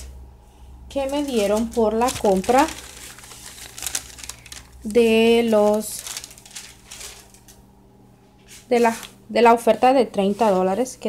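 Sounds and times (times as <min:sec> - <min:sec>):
paper rustling and crinkling: 0:00.9 - 0:07.6, 0:08.4 - 0:09.2, 0:10.2 - 0:10.8.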